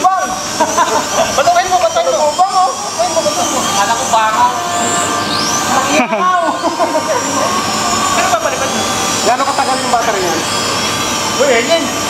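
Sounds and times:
people calling out: 0.0s - 9.8s
drone propellers whining: 0.0s - 12.0s.

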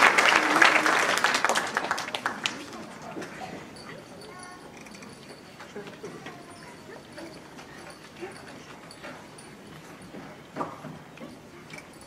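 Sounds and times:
murmur of audience: 0.0s - 12.0s.

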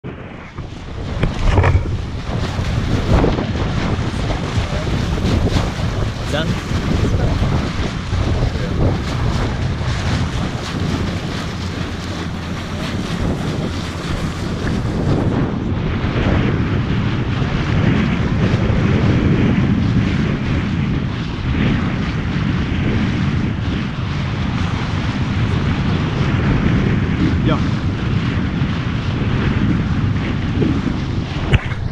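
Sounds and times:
water rushing and splashing: 0.0s - 18.8s
wind buffeting microphone: 0.0s - 31.9s.

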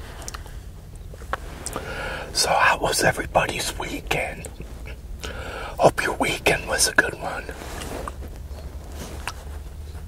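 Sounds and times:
man speaking softly: 2.3s - 4.8s, 5.7s - 7.7s.

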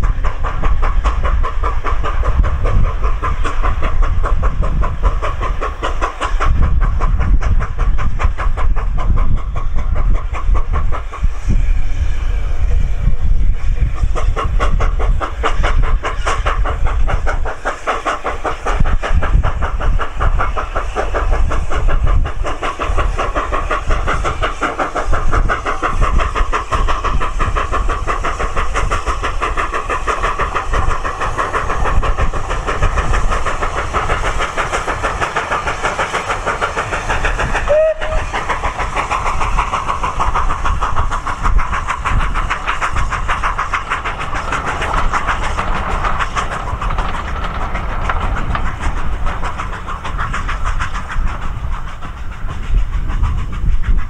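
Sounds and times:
steam locomotive exhaust beating: 0.0s - 54.0s
train rumbling on rails: 0.0s - 54.0s.

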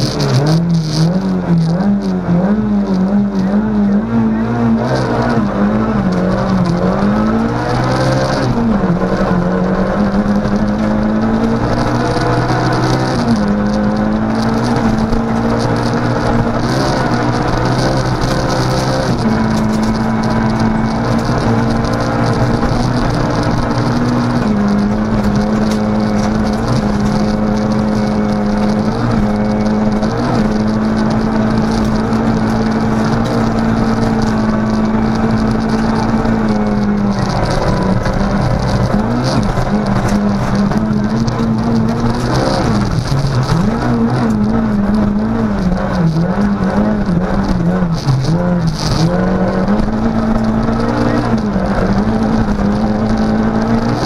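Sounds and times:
rally car engine at high revs: 0.0s - 54.0s.

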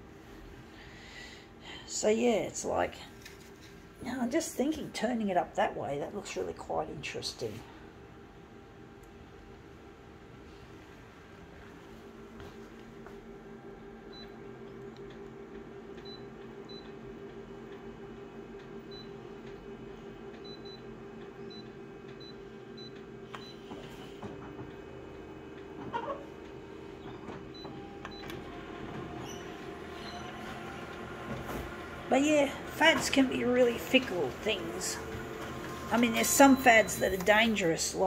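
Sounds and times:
copier humming: 0.0s - 38.0s
copier mechanical noises: 0.0s - 38.0s
short beeps and clicks: 36.0s - 37.3s.

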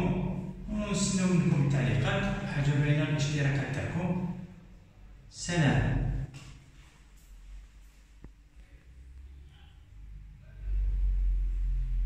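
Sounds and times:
deep low rumble: 8.7s - 12.0s.

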